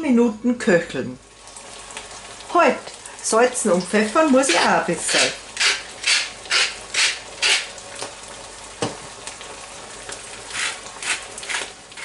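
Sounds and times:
sauce sizzling: 0:01.0 - 0:12.0
spice mill grinding: 0:05.2 - 0:07.7, 0:10.5 - 0:12.0.

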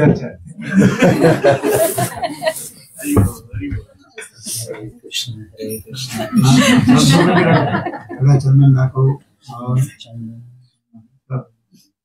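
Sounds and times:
man chuckling: 0:00.7 - 0:02.8, 0:06.0 - 0:08.4
man speaking word: 0:03.0 - 0:07.6, 0:08.2 - 0:10.6.

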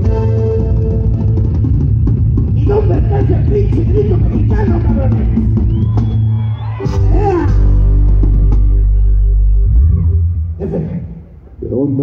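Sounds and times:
live band music: 0:00.0 - 0:10.0
man calling out: 0:02.6 - 0:05.4.

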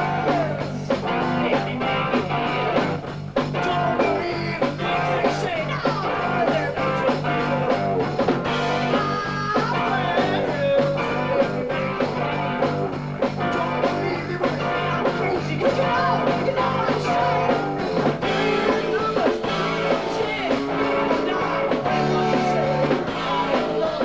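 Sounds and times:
bass line: 0:00.0 - 0:24.0
drum beat: 0:00.0 - 0:24.0
electric guitar: 0:00.0 - 0:24.0.

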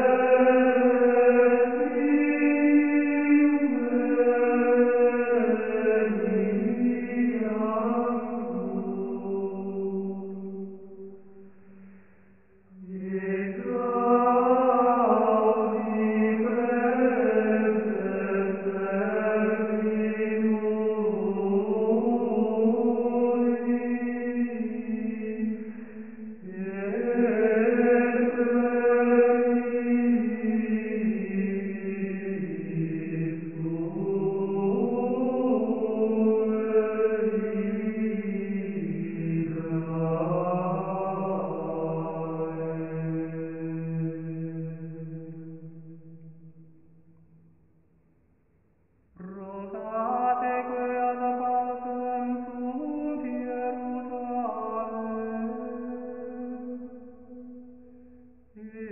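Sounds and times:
slow vocal chant: 0:00.0 - 0:47.7, 0:49.0 - 0:58.9.

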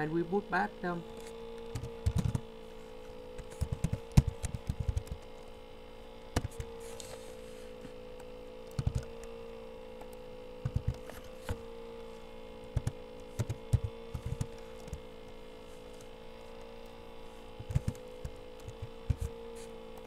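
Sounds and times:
steady electrical hum: 0:00.0 - 0:20.0
computer keys tapping: 0:01.6 - 0:02.5, 0:03.4 - 0:05.3, 0:06.4 - 0:06.7, 0:08.2 - 0:09.3, 0:10.0 - 0:11.1, 0:12.7 - 0:15.4, 0:17.6 - 0:19.4.

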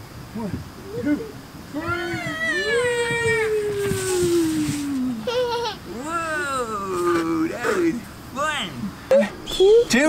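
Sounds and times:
excited wordless voices cheering: 0:01.7 - 0:04.8.

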